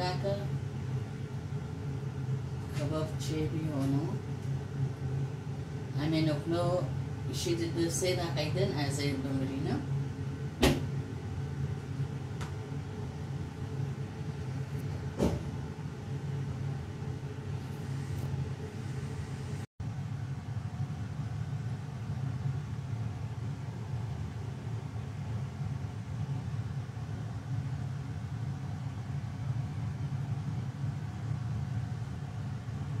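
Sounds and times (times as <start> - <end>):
kitchen fan humming: 0.0 - 33.0
short knock: 15.2 - 15.5.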